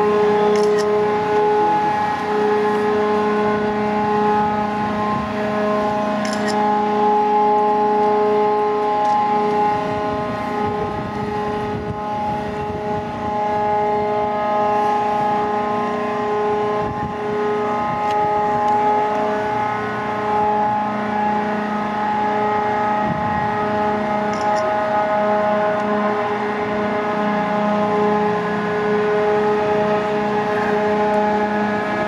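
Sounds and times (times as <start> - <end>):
crane and winch machinery humming: 0.0 - 32.0.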